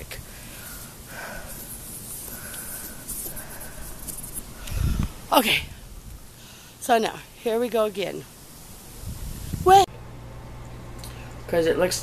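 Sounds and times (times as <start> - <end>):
phone rubbing against cloth: 1.2 - 4.6.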